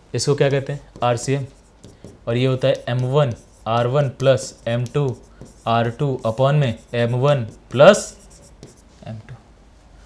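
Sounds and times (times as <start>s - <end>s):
man talking: 0.1s - 1.6s, 2.3s - 8.2s, 9.0s - 9.4s
pen writing on display board: 0.5s - 8.9s.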